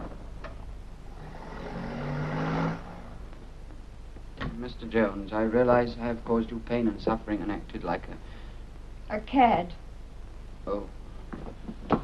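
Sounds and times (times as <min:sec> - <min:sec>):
road noise: 0:01.1 - 0:03.4.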